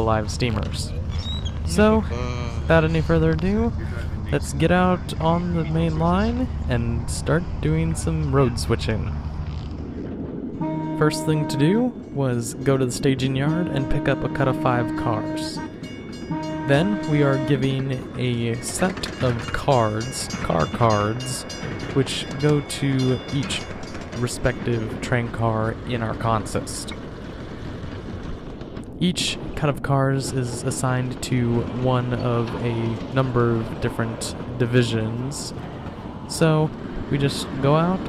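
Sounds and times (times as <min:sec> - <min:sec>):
low background rumble: 0:00.0 - 0:38.0
wind noise on microphone: 0:06.3 - 0:22.5.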